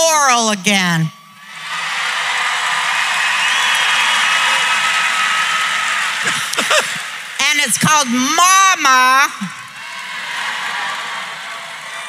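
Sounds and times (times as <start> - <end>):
whistles and whoops: 1.3 - 6.2
audience applauding and cheering: 1.4 - 8.7, 9.4 - 12.0.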